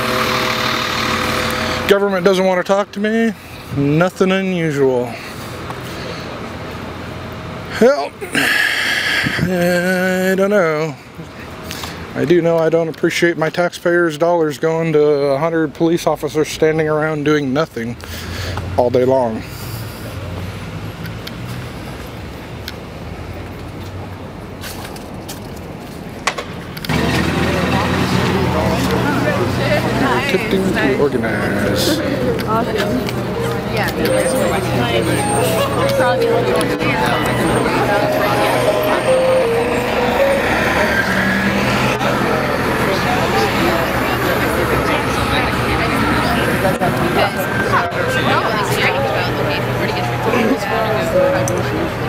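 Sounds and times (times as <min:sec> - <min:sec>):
vehicle engine idling: 0:00.0 - 0:12.2, 0:26.5 - 0:52.0
street noise: 0:00.0 - 0:52.0
crowd talking: 0:26.9 - 0:52.0.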